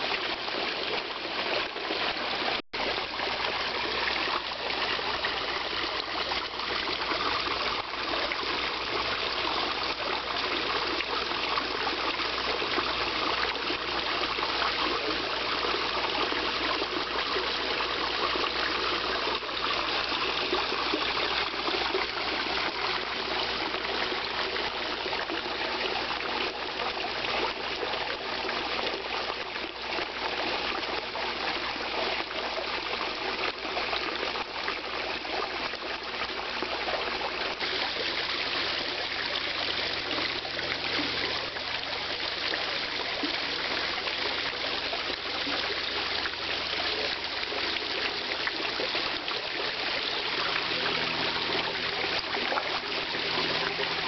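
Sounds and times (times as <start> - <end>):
water trickling into a pond: 0.0 - 54.0.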